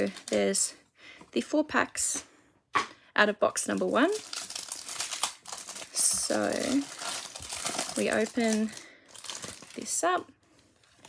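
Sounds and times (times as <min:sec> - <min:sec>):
plastic wrapper crinkling: 0:00.0 - 0:00.7, 0:03.6 - 0:11.0.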